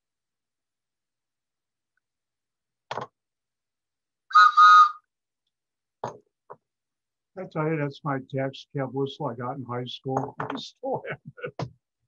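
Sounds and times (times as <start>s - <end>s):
shrill whistle blasts: 4.3s - 5.1s.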